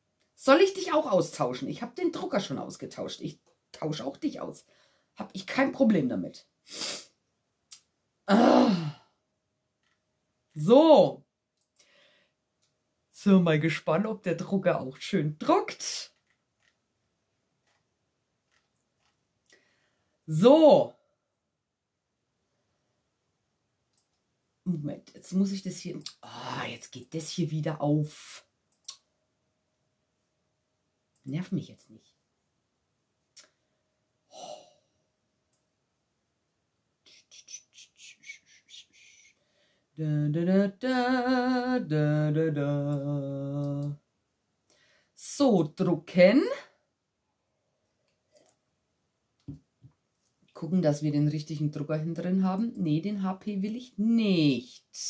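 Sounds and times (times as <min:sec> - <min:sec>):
faint short hissing: 0:06.7 - 0:07.2
woman humming: 0:40.0 - 0:44.0.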